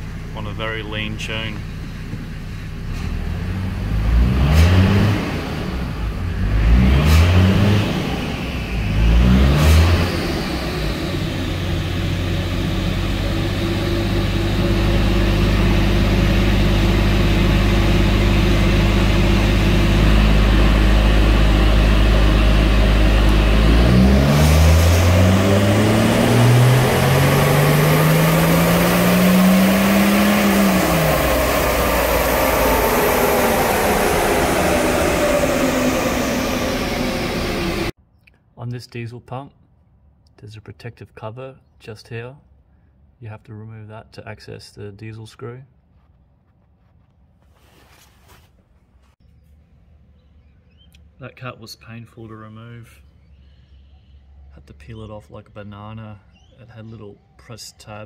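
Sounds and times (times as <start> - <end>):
diesel engine revving: 0.0 - 38.0.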